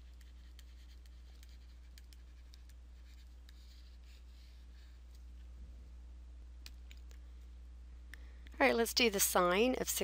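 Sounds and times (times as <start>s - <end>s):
stylus scratching on tablet screen: 0.0s - 5.4s
low electrical hum: 0.0s - 10.0s.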